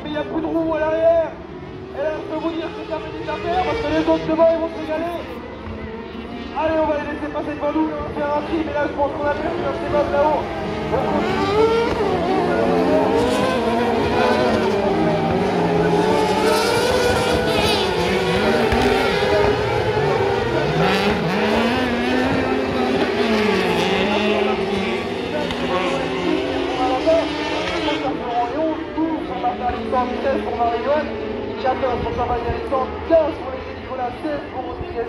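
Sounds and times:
buggy engines revving: 0:01.3 - 0:35.0.

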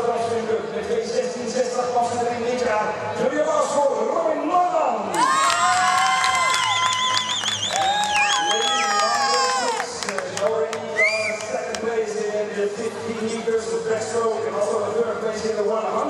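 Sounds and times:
spectators cheering and shouting: 0:05.1 - 0:10.0.

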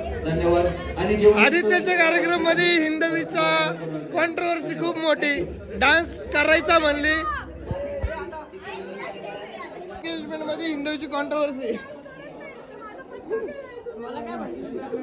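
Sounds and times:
group chatter: 0:00.0 - 0:15.0.

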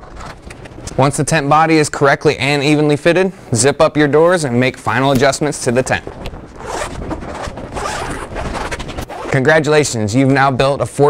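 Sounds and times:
fabric rustling: 0:04.6 - 0:09.4
zipper rasping closed: 0:05.8 - 0:09.4.

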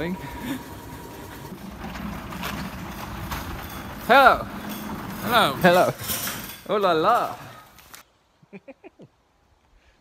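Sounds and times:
paint mixer humming: 0:00.0 - 0:05.6.

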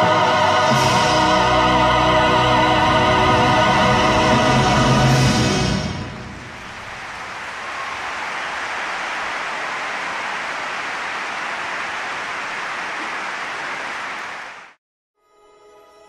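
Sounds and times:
audience applauding: 0:06.6 - 0:14.8.

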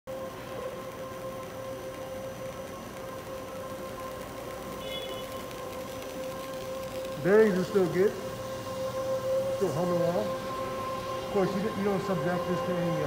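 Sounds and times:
conveyor whirring: 0:00.1 - 0:13.0
machine hum: 0:00.1 - 0:13.0.

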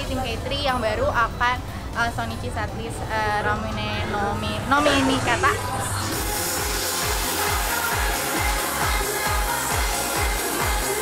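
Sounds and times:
music with steady kick drum: 0:06.1 - 0:11.0.

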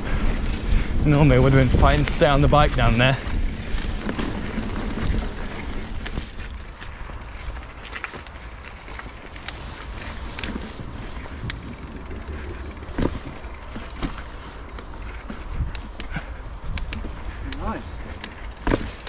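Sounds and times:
bike clicks and rattles: 0:00.0 - 0:19.0
tyre and wind rumble: 0:00.0 - 0:19.0.

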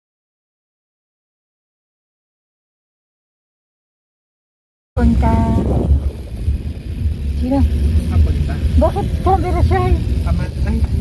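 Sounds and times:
car cabin rumble: 0:05.0 - 0:11.0.

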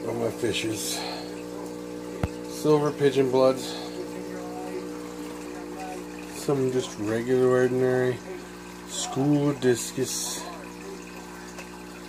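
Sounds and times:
aquarium equipment hum: 0:00.0 - 0:12.0
faint trickling water: 0:00.0 - 0:12.0.

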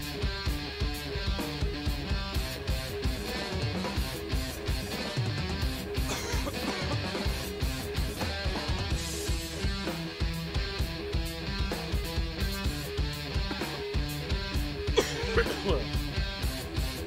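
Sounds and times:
drum kit steady beat: 0:00.0 - 0:17.0
electric guitar riffing: 0:00.0 - 0:17.0.

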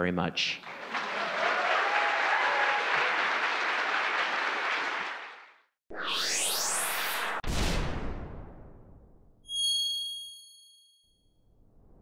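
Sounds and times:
rising whoosh: 0:05.9 - 0:07.6.

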